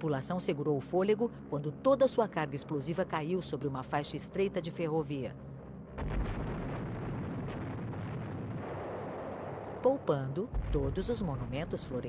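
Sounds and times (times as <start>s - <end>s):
aerial bombs exploding: 6.0s - 9.6s.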